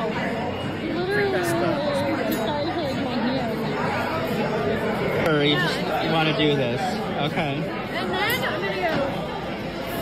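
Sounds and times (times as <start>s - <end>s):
restaurant crowd chatter: 0.0s - 10.0s.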